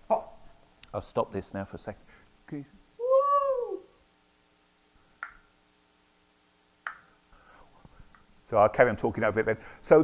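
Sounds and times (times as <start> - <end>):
man's high meow-like cry: 3.0 - 4.0.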